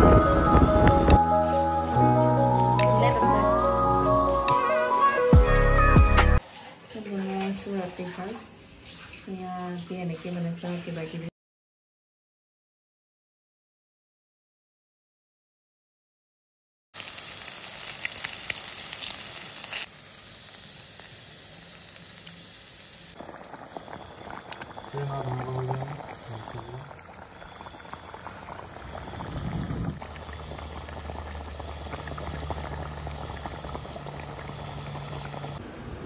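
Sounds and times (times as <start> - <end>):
curry bubbling: 17.0 - 35.6
eggs sizzling in hot oil: 17.0 - 35.6.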